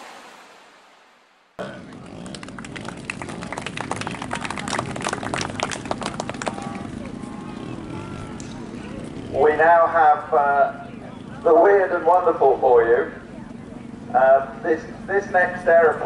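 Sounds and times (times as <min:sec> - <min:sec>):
steady wind-like rush: 0:00.0 - 0:01.6
distant voices: 0:01.6 - 0:16.0.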